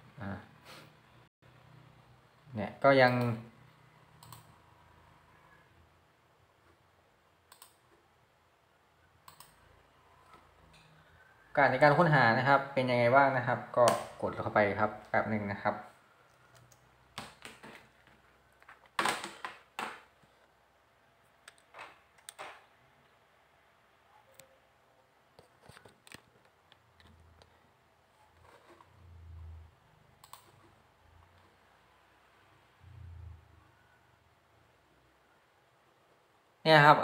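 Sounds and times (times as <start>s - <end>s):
computer mouse clicks: 4.2s - 4.6s, 7.5s - 8.0s, 9.2s - 10.9s, 16.3s - 17.7s, 21.4s - 22.5s, 30.2s - 30.7s
mouse clicks: 4.2s - 4.6s, 7.5s - 7.8s, 9.2s - 9.6s, 30.2s - 30.5s.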